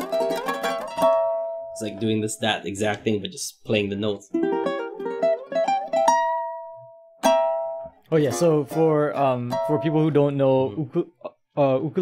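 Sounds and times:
ukulele notes plucked: 0.0 - 2.1, 4.3 - 10.6.

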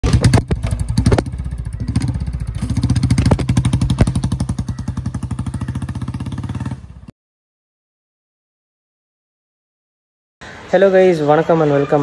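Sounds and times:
motorcycle engine throttle blips: 0.0 - 7.1
motorcycle exhaust thumping: 0.0 - 7.1.

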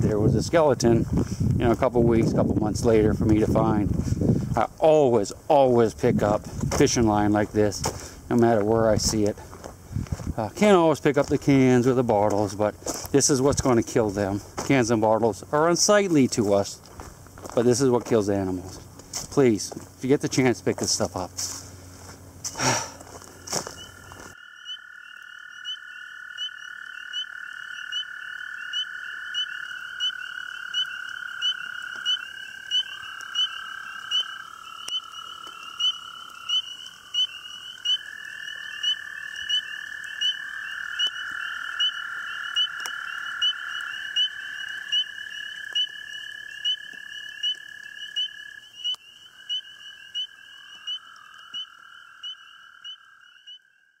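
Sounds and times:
frogs peeping: 4.6 - 54.0
frogs trilling: 4.6 - 54.0.

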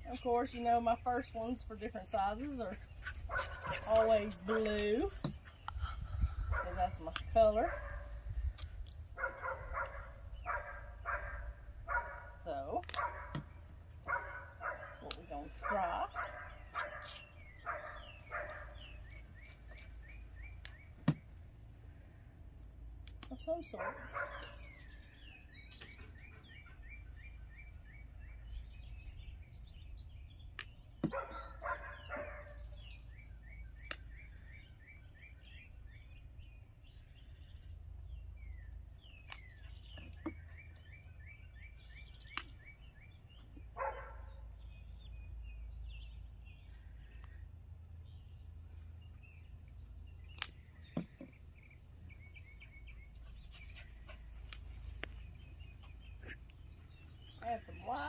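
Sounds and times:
songbird chirping: 0.0 - 58.0
wind rumble on microphone: 2.5 - 12.6.

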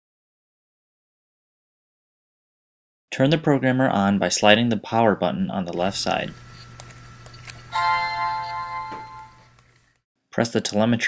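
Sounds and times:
start-up chime: 7.7 - 9.5.

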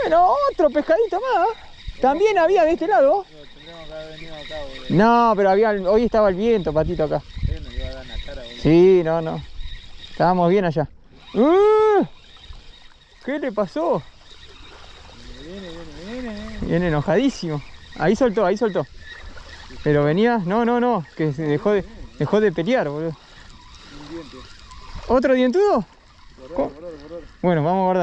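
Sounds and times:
water lapping at shoreline: 0.0 - 28.0.

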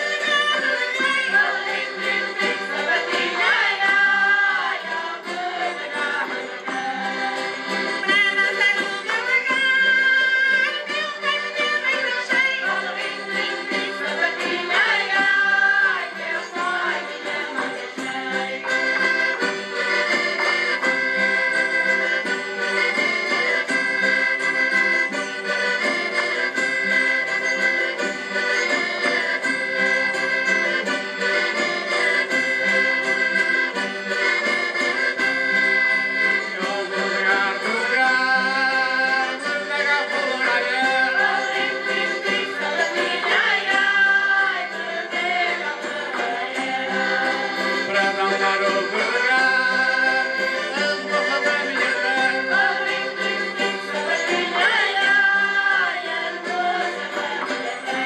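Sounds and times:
folk dance tune with accordion: 0.0 - 58.0.

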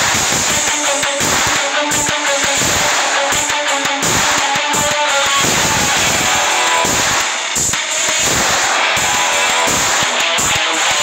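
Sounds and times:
hard rock band playing: 0.0 - 11.0.

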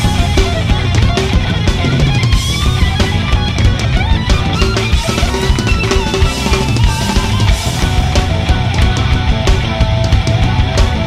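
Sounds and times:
bass drum hits: 0.0 - 4.5
electric guitar: 0.0 - 11.0
hard rock band playing: 0.0 - 11.0.

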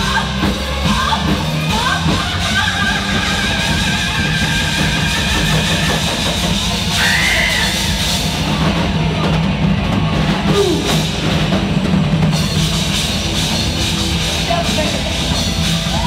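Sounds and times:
drum kit: 0.0 - 16.0
live rock band playing: 0.0 - 16.0.

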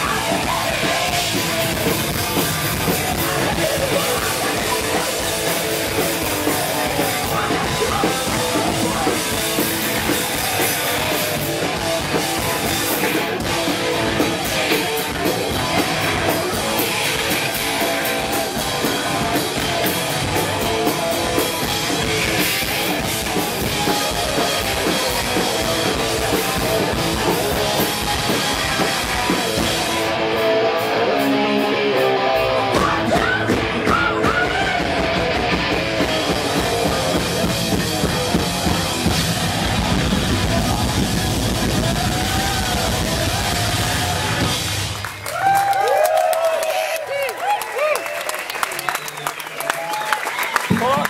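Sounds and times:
distorted electric guitar: 0.0 - 45.2
bass guitar: 0.0 - 46.1
drum kit: 0.0 - 46.1
shouted vocals: 32.4 - 35.4, 39.6 - 44.6, 45.3 - 51.0.

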